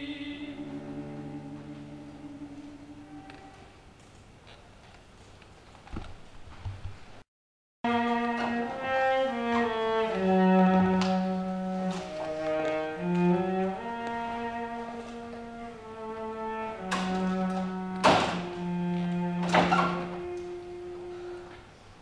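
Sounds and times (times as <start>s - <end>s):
cello playing slow melody: 0.1s - 3.8s, 7.9s - 21.8s.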